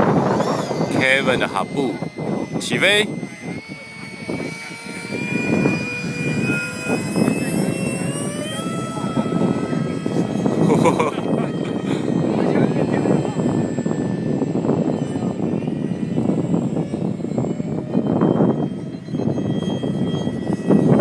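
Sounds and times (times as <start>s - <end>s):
model jet ducted-fan whine: 0.0s - 21.0s.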